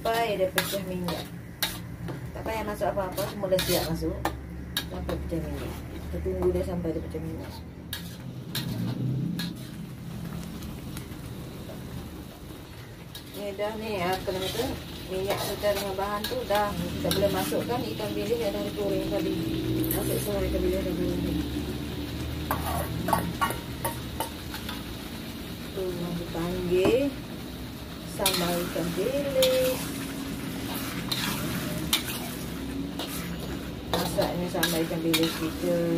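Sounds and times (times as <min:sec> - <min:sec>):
paste sizzling in a wok: 0:00.0 - 0:35.9
metal spatula knocking wok: 0:22.5 - 0:24.7.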